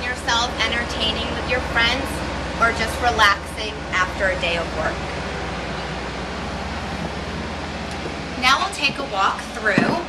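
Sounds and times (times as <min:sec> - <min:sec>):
machinery engine low throbbing drone: 0:00.0 - 0:10.0.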